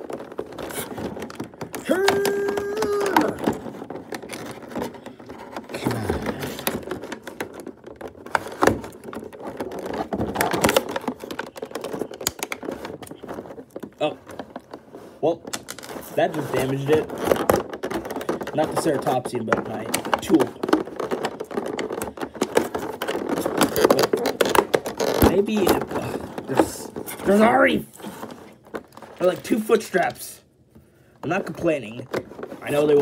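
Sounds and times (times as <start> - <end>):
plastic packaging crinkling: 0.0 - 30.3
tool scraping plastic: 0.0 - 30.3, 31.2 - 33.0.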